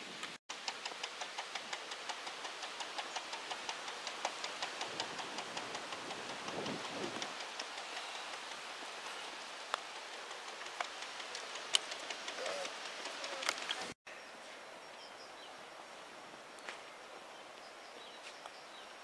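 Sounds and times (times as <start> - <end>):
steady hiss: 0.0 - 19.0
rapid even ticking: 0.5 - 14.0.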